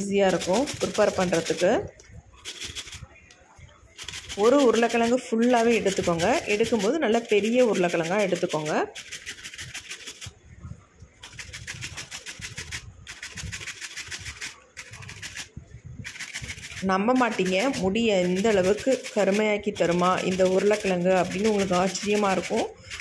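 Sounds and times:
person speaking: 0.0 - 9.2, 16.6 - 23.0
potato grating on plastic grater: 0.3 - 1.8, 2.4 - 3.1, 3.9 - 10.4, 11.2 - 23.0.

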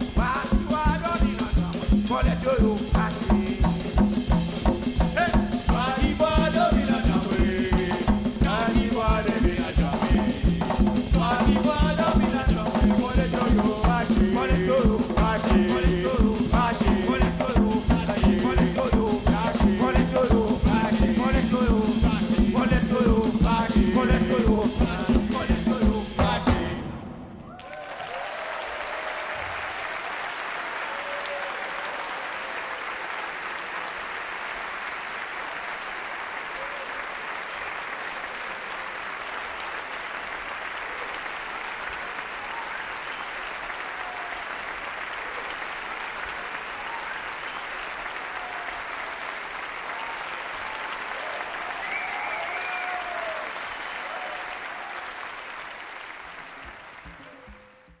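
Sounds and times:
audience cheering: 24.0 - 58.0
audience applauding: 27.4 - 58.0.

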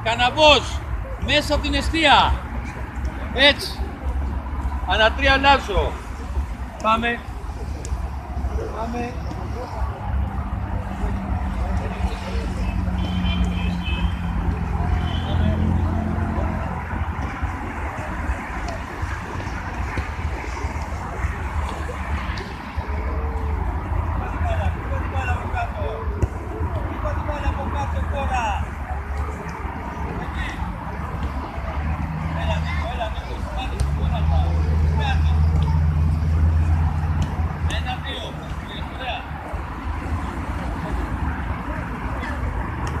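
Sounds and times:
traffic rumble: 0.0 - 43.0
vehicle engine: 0.0 - 43.0
footballs being kicked: 37.0 - 38.6.

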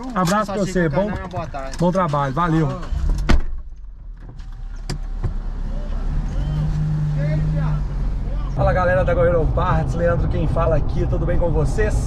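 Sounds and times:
low steady car hum: 0.0 - 12.0
thump: 3.0 - 5.4.

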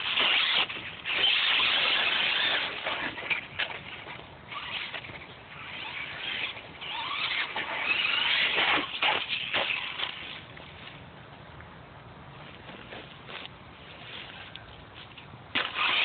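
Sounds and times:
toy truck electric motor whining: 0.0 - 10.4, 15.6 - 16.0.

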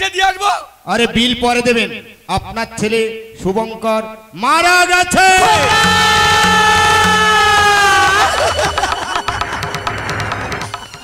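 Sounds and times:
man wailing: 5.2 - 9.1.

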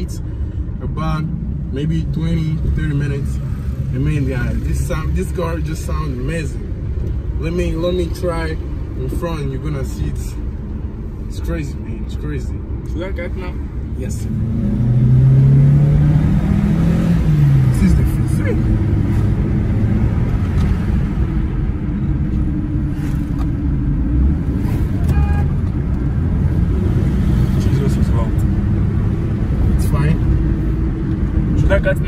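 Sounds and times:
road noise: 0.0 - 32.0
car engine accelerating: 13.2 - 32.0.

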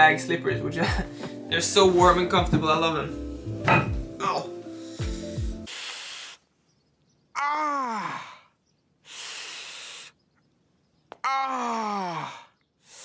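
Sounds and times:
background music: 0.0 - 5.7
man groaning: 4.2 - 4.6, 7.4 - 8.5, 11.2 - 12.5
hiss of breath through teeth: 4.7 - 6.5, 9.0 - 10.2.

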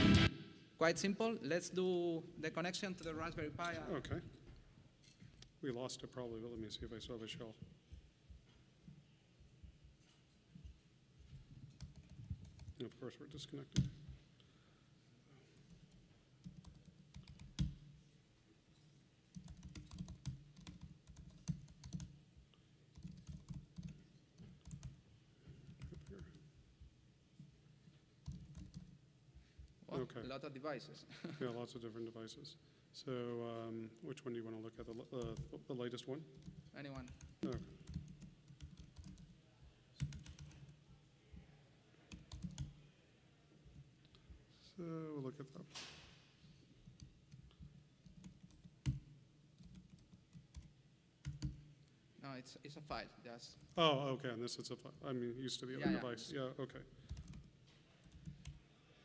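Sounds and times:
typing on computer keyboard: 11.6 - 12.9, 15.9 - 17.9, 19.3 - 22.2, 22.9 - 25.0, 25.6 - 26.5, 28.2 - 29.0, 36.4 - 39.3, 40.0 - 40.8, 42.1 - 42.8, 46.8 - 51.7, 57.0 - 58.6.

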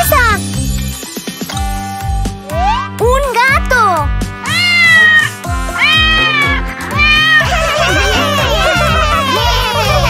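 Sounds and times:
children's music with bass beat: 0.0 - 10.0
cartoon cat meows: 4.5 - 7.6.

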